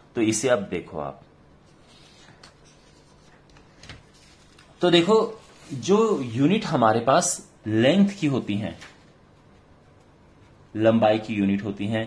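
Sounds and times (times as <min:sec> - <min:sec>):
paper scratching and rustling: 0:01.7 - 0:06.7.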